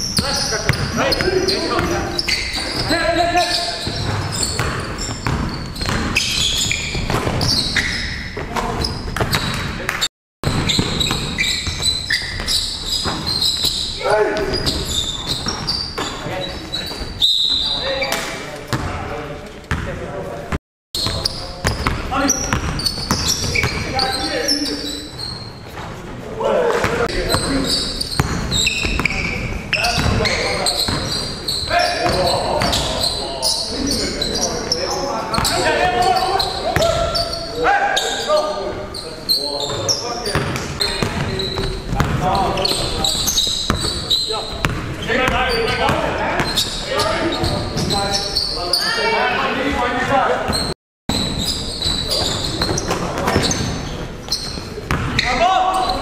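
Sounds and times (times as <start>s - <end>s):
basketball bouncing on hardwood floor: 3.9s - 7.6s, 28.2s - 29.1s, 29.9s - 30.3s, 41.9s - 42.2s, 44.6s - 44.9s
players calling out: 26.2s - 56.0s.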